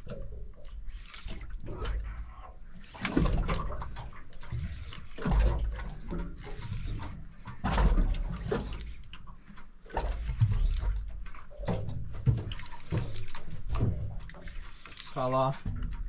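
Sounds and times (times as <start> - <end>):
water sloshing against boat hull: 0.0 - 16.0.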